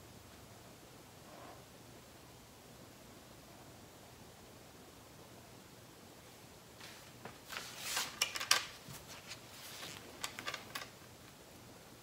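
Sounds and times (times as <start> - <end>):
cloth rag rustling: 6.8 - 10.4.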